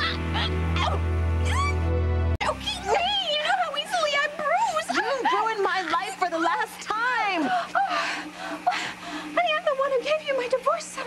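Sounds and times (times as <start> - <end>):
woman's strangled cries: 0.0 - 1.9, 7.3 - 9.4.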